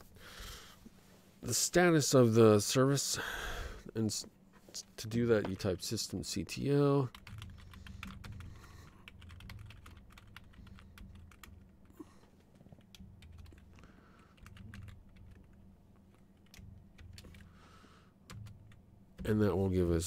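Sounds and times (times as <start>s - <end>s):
low steady hum: 0.0s - 20.0s.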